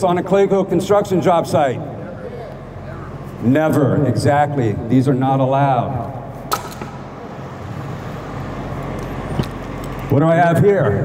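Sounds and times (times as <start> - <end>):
sharp click: 6.5 - 7.0.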